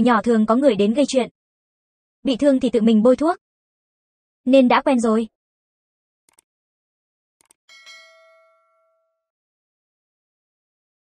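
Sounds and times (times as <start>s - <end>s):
bell-like chime: 7.7s - 9.3s.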